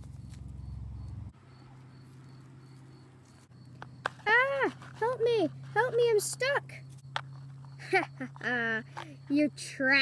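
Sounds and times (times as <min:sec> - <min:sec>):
cricket chirping: 0:00.0 - 0:10.0
low steady hum: 0:00.0 - 0:10.0.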